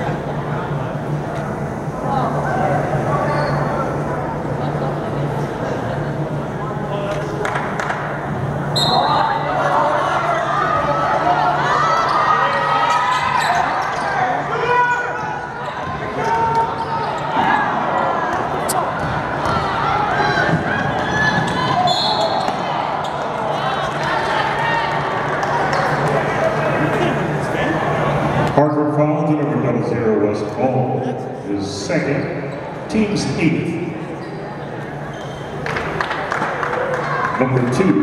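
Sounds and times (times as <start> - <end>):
crowd voices: 0.0 - 38.0.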